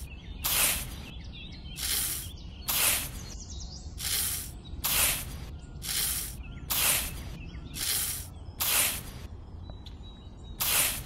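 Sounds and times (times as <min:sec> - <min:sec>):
rice grains scraping across sand: 0:01.8 - 0:03.3, 0:04.0 - 0:07.2, 0:07.8 - 0:09.1, 0:10.6 - 0:11.0.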